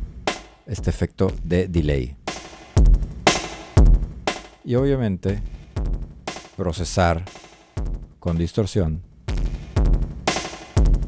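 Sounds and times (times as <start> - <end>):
electronic drum loop with distorted delay: 0.0 - 11.0.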